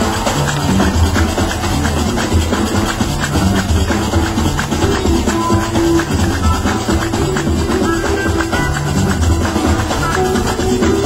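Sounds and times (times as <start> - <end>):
fast dense percussion: 0.0 - 11.0
fusion band playing live: 0.0 - 11.0.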